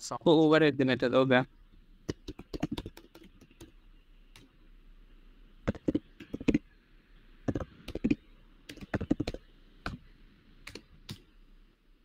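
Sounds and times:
computer keyboard typing: 2.1 - 3.7, 5.7 - 6.6, 7.5 - 10.0.

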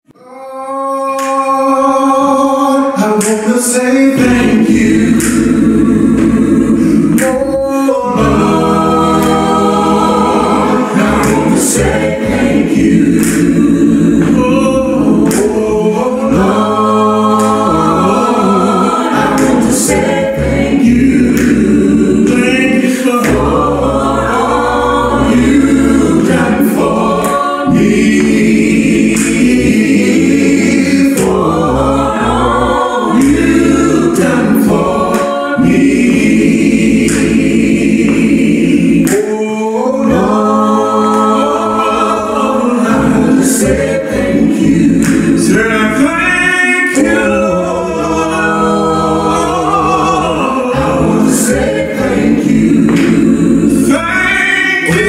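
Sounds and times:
gospel choir singing: 0.0 - 55.0.

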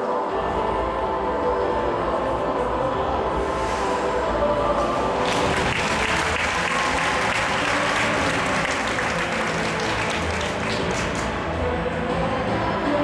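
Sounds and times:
audience applause: 5.2 - 11.4.

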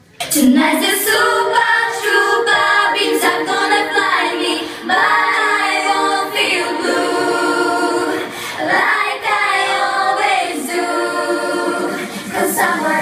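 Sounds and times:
girls singing in harmony: 0.2 - 13.0.

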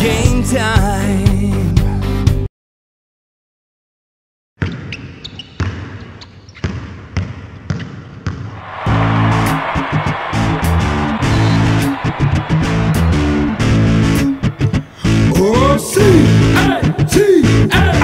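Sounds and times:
basketball bouncing: 4.6 - 8.6
hip-hop beat with heavy bass: 8.9 - 18.0.

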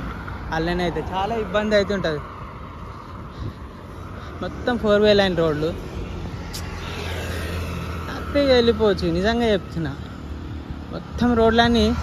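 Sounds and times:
road traffic rumble: 0.0 - 12.0
vehicle passing by: 0.0 - 12.0.

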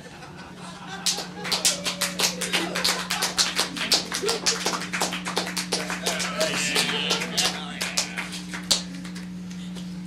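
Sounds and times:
steady low hum: 0.0 - 10.0
small audience clapping: 0.8 - 9.9.

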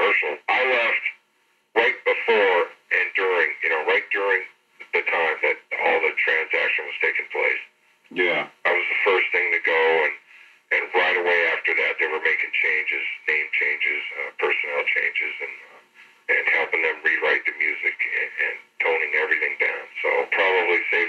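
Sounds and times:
man talking: 0.0 - 1.2, 1.8 - 21.0.

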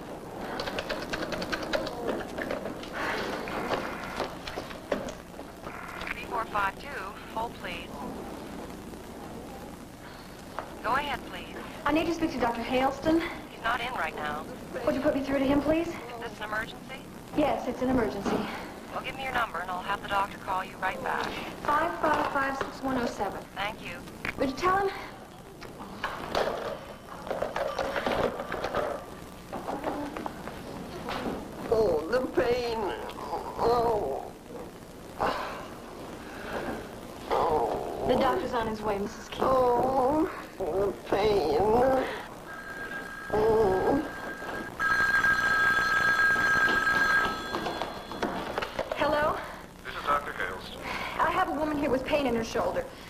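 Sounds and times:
telephone ringing: 42.4 - 49.2
hurried footsteps: 46.3 - 49.0.

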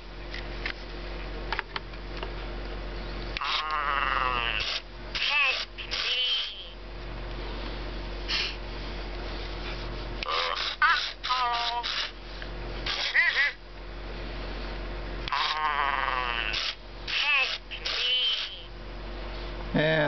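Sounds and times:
toy electronic chirps and babble: 3.4 - 6.8, 10.3 - 12.2, 12.9 - 13.6, 15.3 - 18.7.

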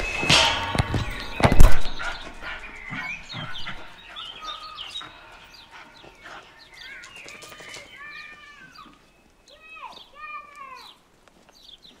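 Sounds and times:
birds chirping and whistling: 0.0 - 12.0.

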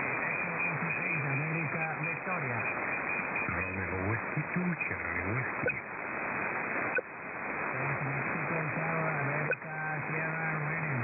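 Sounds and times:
man's voice over radio: 0.0 - 2.8, 3.4 - 5.8, 7.8 - 11.0
radio band hiss: 0.0 - 11.0.

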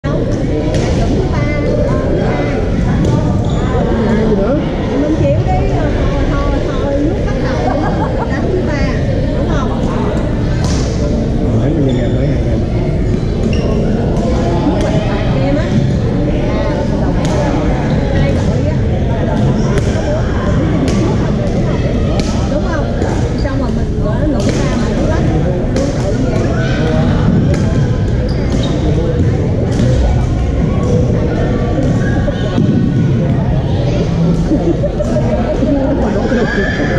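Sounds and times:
babble of many voices: 0.0 - 36.9.

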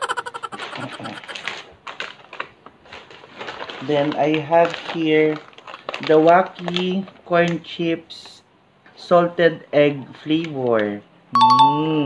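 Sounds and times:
chip bags crinkling: 0.2 - 7.9.

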